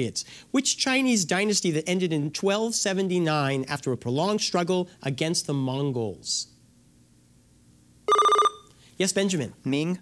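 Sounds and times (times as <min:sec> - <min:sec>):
electronic buzzer warbling tone: 0:08.1 - 0:08.7.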